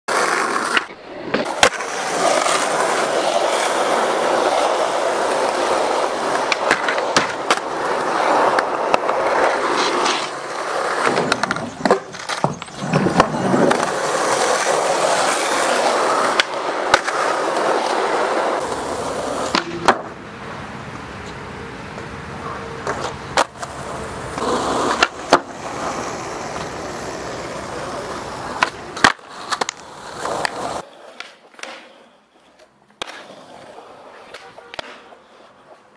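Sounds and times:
skateboard clacking on ground: 0.1 - 20.3, 20.9 - 35.9
skateboard wheels rolling on asphalt: 0.1 - 35.9.

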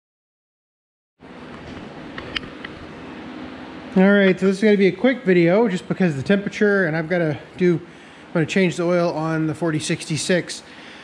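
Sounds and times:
space heater fan humming: 1.2 - 11.0.

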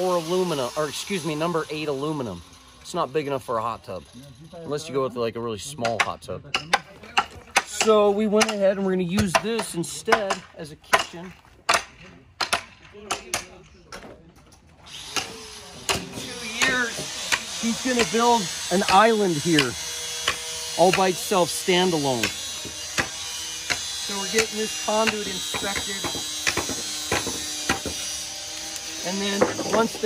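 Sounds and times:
steady outdoor hiss: 0.0 - 30.0.

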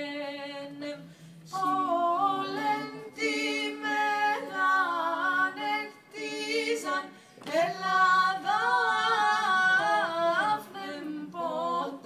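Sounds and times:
women's vocal ensemble singing: 0.0 - 12.0.

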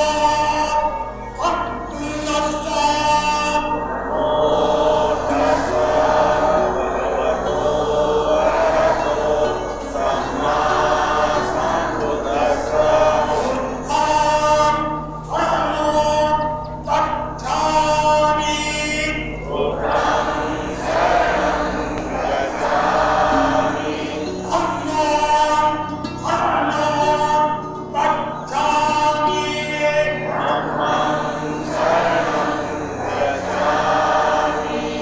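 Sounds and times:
group singing devotional song: 0.0 - 35.0
musical backing: 0.0 - 35.0.

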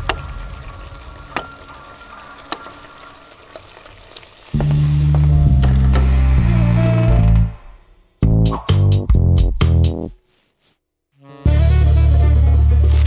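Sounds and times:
pots sizzling and bubbling: 0.0 - 6.8.

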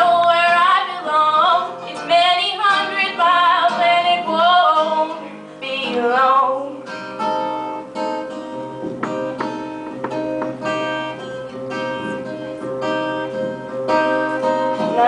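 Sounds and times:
acoustic guitar playing: 0.0 - 15.0.

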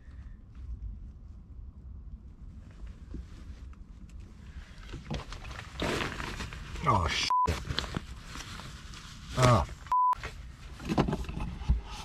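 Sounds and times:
steady low rumble: 0.0 - 10.8
fabric rustling: 0.6 - 10.7.

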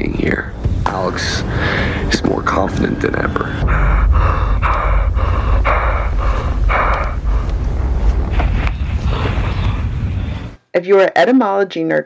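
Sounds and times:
deep steady rumble: 0.0 - 10.6.

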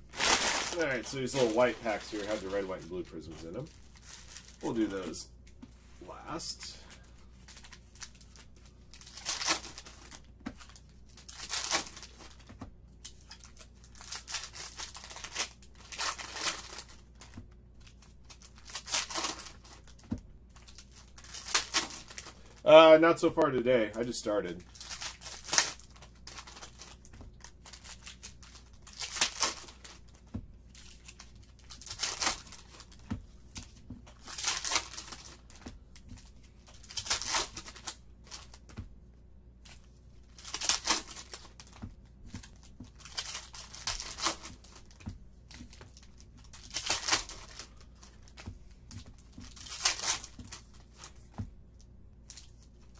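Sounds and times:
plastic wrapper tearing and crinkling: 0.0 - 5.2, 7.4 - 12.4, 13.0 - 22.7, 23.4 - 33.0, 33.6 - 38.7, 40.2 - 51.2.

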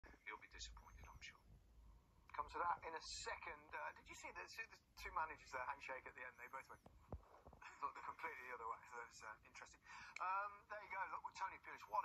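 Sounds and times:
man speaking through laptop speakers: 0.0 - 1.5, 2.3 - 6.9, 7.6 - 12.0.

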